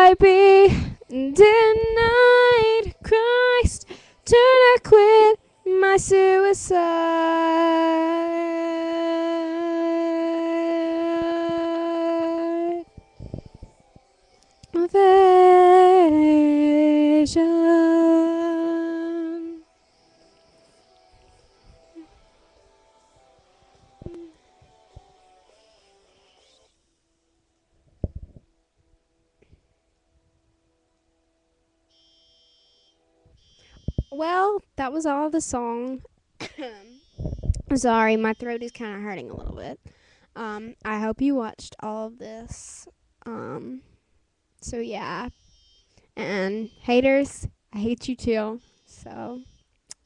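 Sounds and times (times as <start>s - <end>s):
girl singing unaccompanied: 0.0s - 13.6s, 14.6s - 19.7s, 37.6s - 39.8s, 40.4s - 43.9s, 46.2s - 50.0s
faint steady hum: 0.0s - 50.0s
high-pitched electronic whine: 31.9s - 34.2s.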